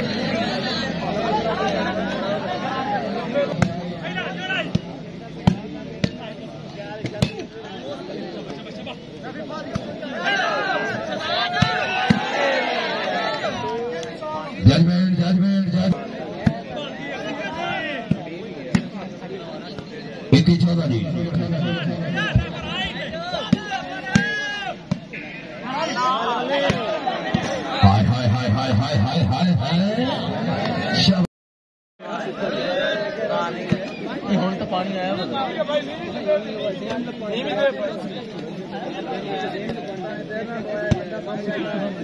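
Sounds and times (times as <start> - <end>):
murmur of crowd voices: 0.0 - 31.3, 32.0 - 42.0.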